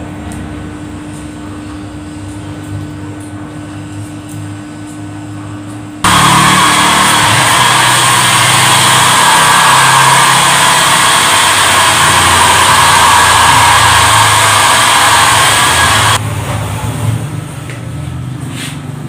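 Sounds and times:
hair dryer blowing: 6.0s - 16.2s.

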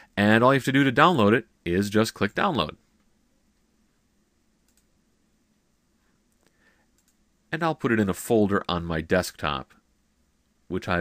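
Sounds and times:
computer mouse click: 4.6s - 4.9s, 6.3s - 7.2s.

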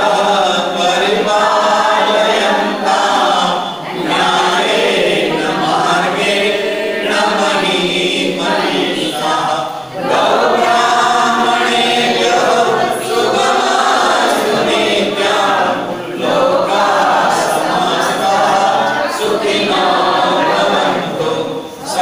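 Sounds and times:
group singing chant in unison: 0.0s - 22.0s.

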